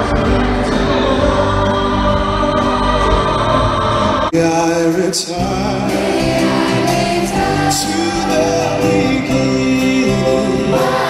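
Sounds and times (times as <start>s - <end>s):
children's choir singing: 0.0s - 11.0s
musical accompaniment: 0.0s - 11.0s.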